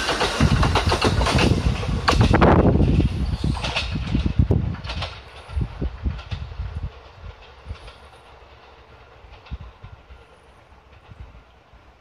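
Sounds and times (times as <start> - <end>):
train wheels clacking over rail joints: 0.0 - 12.0.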